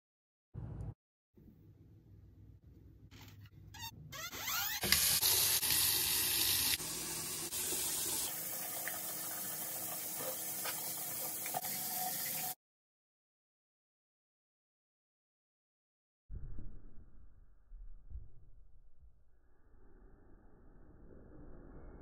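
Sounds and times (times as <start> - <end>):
tap water running into sink: 4.8 - 12.6.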